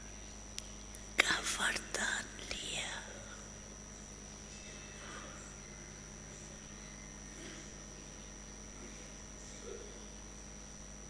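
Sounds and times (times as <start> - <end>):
electrical hum: 0.0 - 11.0
woman whispering: 1.2 - 3.6.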